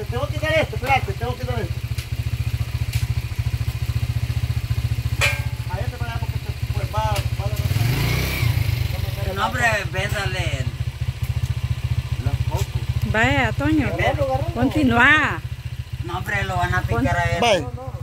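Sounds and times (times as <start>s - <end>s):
engine idling: 0.0s - 18.0s.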